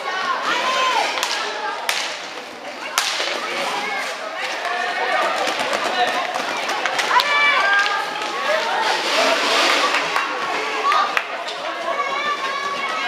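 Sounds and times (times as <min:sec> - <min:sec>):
skates rolling and scraping: 0:00.4 - 0:13.0.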